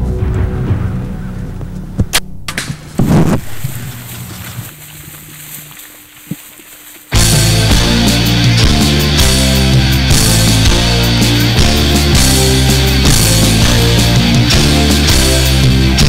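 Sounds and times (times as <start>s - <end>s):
tense background music: 0.0s - 2.8s, 7.2s - 16.0s
bow shot snap: 2.0s - 3.8s
loud rock music: 7.1s - 16.0s.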